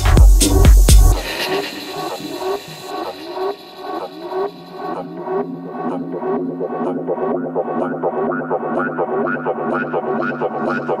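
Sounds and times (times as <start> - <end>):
high hissy synth layer: 0.0 - 6.6
techno music: 0.0 - 11.0.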